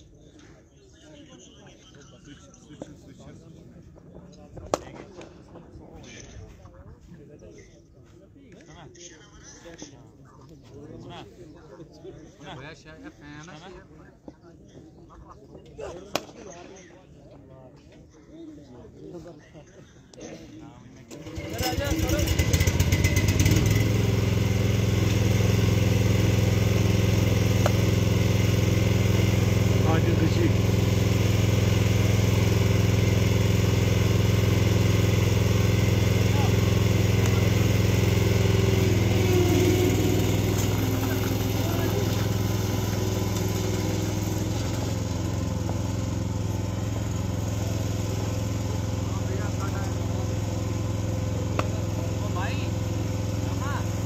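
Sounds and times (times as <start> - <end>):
engine drone: 21.1 - 54.0.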